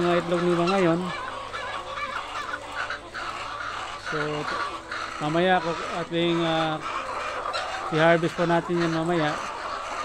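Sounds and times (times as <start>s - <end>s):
hens clucking: 0.0s - 10.0s.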